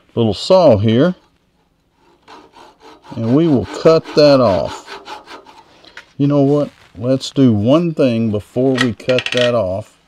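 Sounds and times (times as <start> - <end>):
handsaw cutting wood: 1.9 - 5.7.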